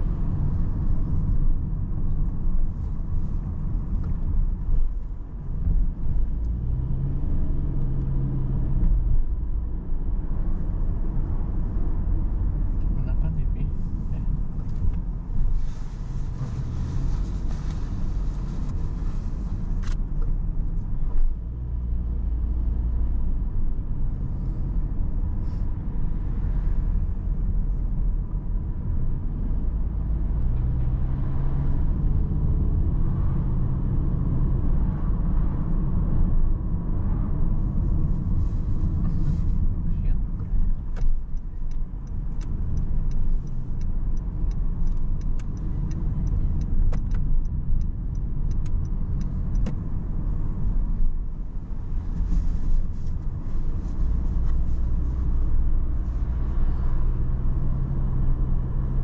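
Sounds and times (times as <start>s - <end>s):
road and engine rumble: 0.0s - 59.0s
turn indicator ticking: 38.9s - 59.0s.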